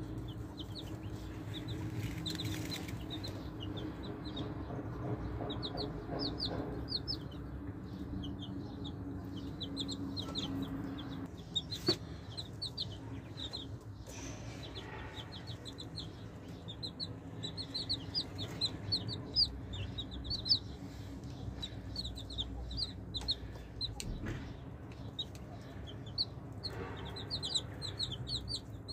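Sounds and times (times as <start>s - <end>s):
baby chicks peeping: 0.0s - 28.9s.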